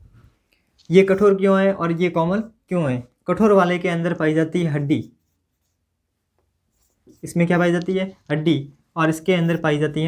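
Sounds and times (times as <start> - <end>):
marker pen on whiteboard: 0.8 - 10.0.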